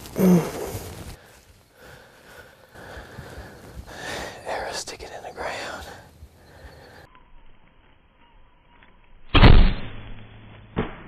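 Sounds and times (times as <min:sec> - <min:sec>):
man breathing heavily: 0:00.2 - 0:04.6, 0:05.6 - 0:07.1
man whispering: 0:03.8 - 0:07.0.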